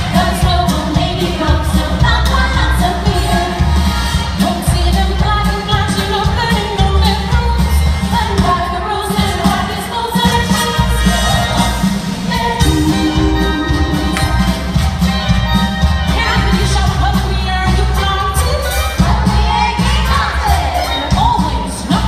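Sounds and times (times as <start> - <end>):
woman singing into microphone: 0.0 - 3.7, 12.3 - 14.7, 16.1 - 22.0
amplified music with pulsing bass: 10.3 - 20.8.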